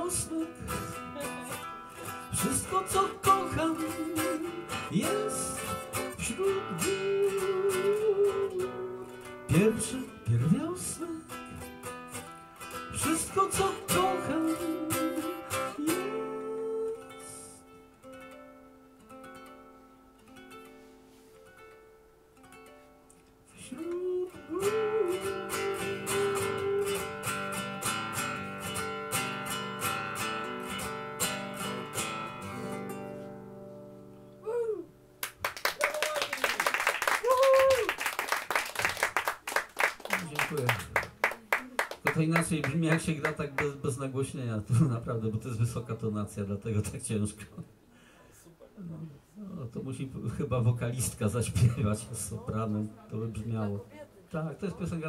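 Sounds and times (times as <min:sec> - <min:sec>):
man singing: 0:00.0 - 0:11.7, 0:12.8 - 0:17.6, 0:23.5 - 0:27.4
classical guitar: 0:00.0 - 0:35.3, 0:39.9 - 0:47.8, 0:48.8 - 0:55.0
audience applause: 0:35.2 - 0:43.7.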